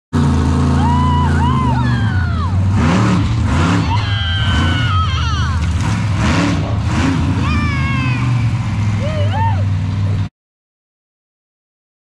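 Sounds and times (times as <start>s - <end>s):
monster truck engine drone: 0.1s - 10.3s.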